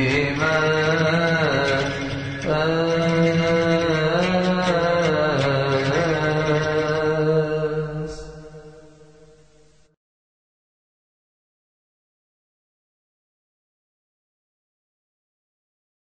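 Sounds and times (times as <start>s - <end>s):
liturgical chant: 0.0s - 9.7s.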